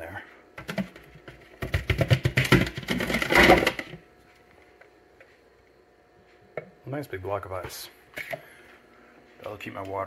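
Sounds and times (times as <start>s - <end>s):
ice rattling in plastic container: 1.6s - 3.9s.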